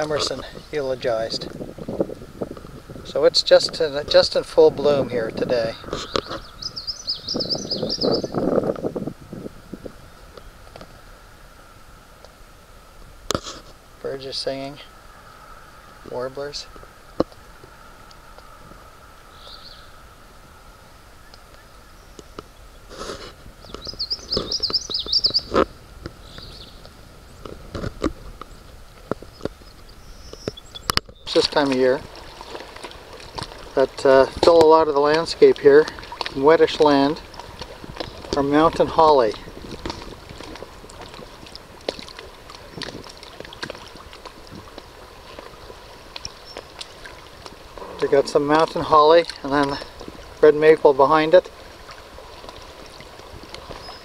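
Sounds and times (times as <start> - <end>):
water lapping against hull: 0.0 - 54.0
warbler singing: 5.0 - 8.6, 19.3 - 20.0, 23.6 - 27.4, 29.2 - 32.4, 46.3 - 46.8, 53.6 - 54.0.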